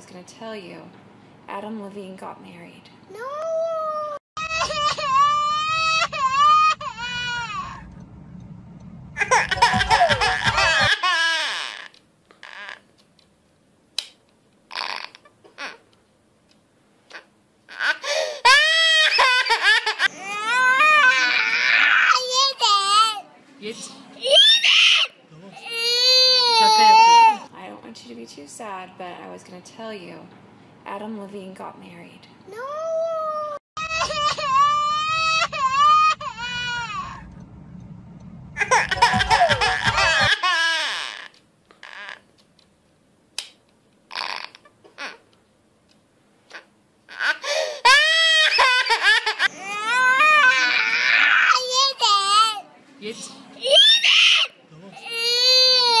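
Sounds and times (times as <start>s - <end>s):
toddler girl crying: 3.2s - 7.8s, 9.2s - 12.8s, 17.7s - 23.2s, 24.2s - 27.5s, 32.6s - 37.2s, 38.6s - 42.2s, 46.5s - 52.6s, 53.6s - 56.0s
young child crying: 3.2s - 7.8s, 32.5s - 37.2s, 46.5s - 52.5s.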